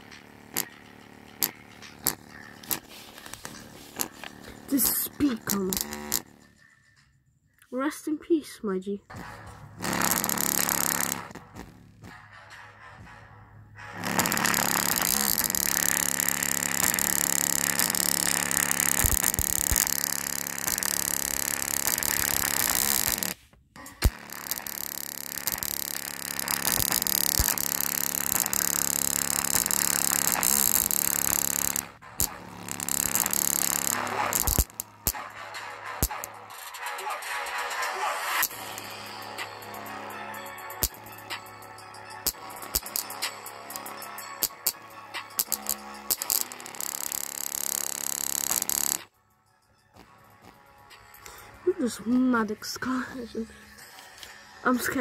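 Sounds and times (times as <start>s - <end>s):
distorted bass-heavy music: 0.0s - 6.7s, 9.2s - 49.0s.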